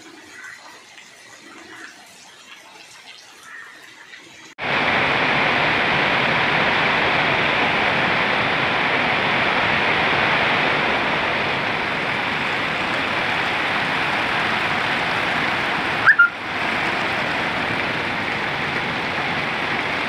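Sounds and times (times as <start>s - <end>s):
water pouring off roof: 0.0s - 20.0s
heavy rain: 4.6s - 20.0s
loud high chirp: 16.0s - 16.4s.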